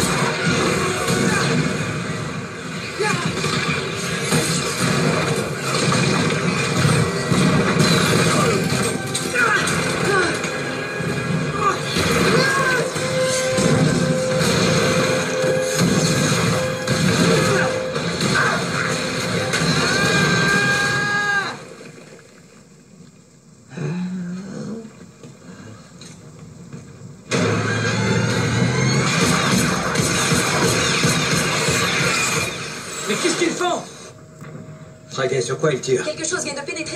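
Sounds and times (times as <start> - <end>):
crashes and impact effects: 0.0 - 20.6.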